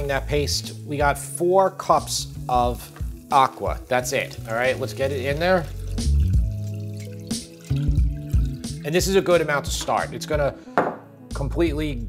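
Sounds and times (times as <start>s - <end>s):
background music with low beat: 0.0s - 12.0s
water pouring into a pan: 1.8s - 10.2s.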